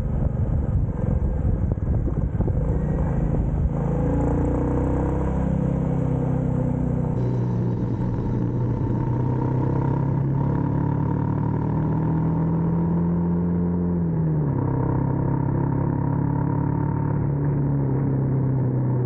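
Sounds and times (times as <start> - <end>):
wind rush on microphone: 0.0 - 4.1
motorcycle engine running: 0.0 - 12.8.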